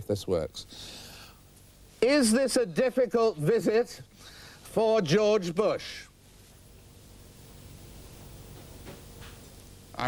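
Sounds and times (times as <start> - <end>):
faint hiss with low hum: 0.0 - 10.0.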